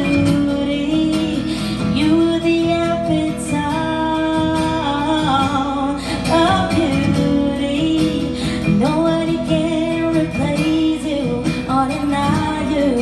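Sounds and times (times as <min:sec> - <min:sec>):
acoustic guitar: 0:00.0 - 0:13.0
woman singing into a microphone: 0:00.0 - 0:13.0.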